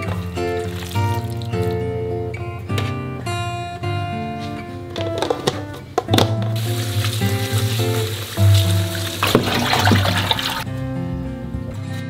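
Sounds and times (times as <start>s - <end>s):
tap water running into sink: 0.0s - 1.7s, 6.6s - 10.6s
background music: 0.0s - 12.0s.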